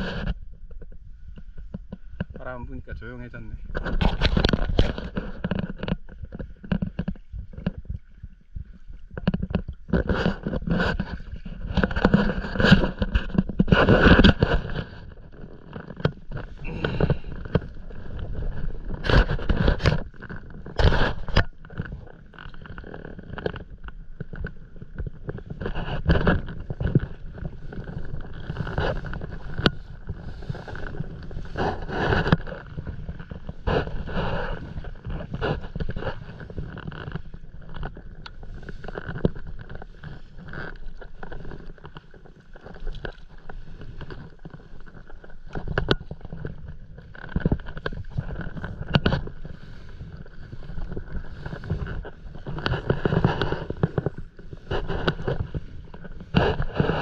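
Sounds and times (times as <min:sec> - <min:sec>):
paddle splashing water: 0:00.0 - 0:57.0.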